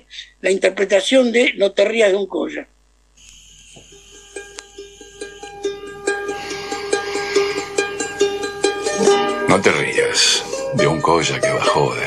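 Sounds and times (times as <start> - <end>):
plucked string instrument music: 4.2 - 12.0.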